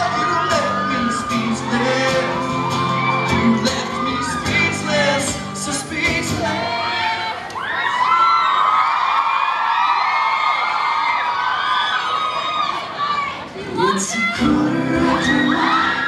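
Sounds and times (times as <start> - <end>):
acoustic guitars strumming: 0.0 - 7.1, 14.3 - 16.0
person singing: 0.0 - 7.2, 13.8 - 16.0
audience singing and screaming: 0.0 - 8.2, 13.6 - 16.0.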